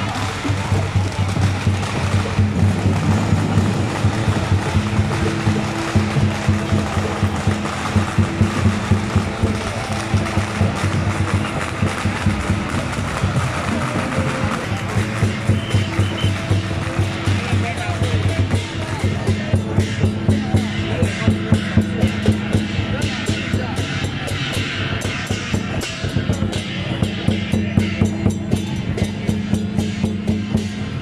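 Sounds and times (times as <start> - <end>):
crowd voices: 0.0 - 31.0
rhythmic percussion beat: 0.0 - 31.0.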